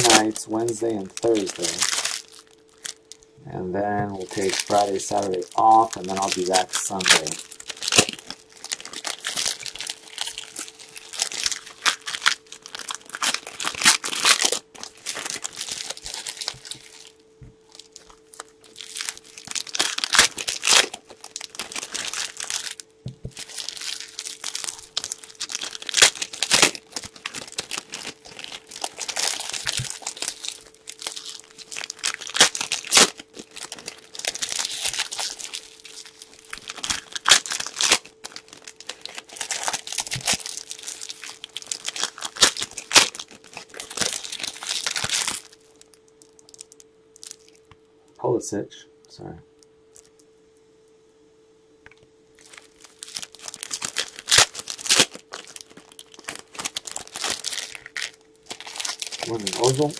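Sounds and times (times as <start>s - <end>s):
foil wrappers crinkling and tearing: 0.0s - 3.3s, 4.0s - 47.7s, 49.9s - 50.2s, 52.4s - 59.9s.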